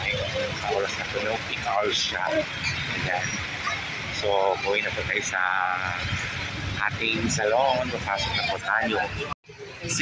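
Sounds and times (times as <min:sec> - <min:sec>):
people's voices: 0:00.0 - 0:10.0
traffic rumbling: 0:00.0 - 0:10.0.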